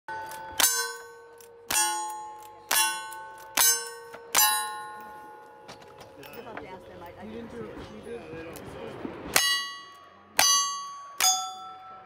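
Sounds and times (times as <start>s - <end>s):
steel plate clanging: 0.1s - 6.4s.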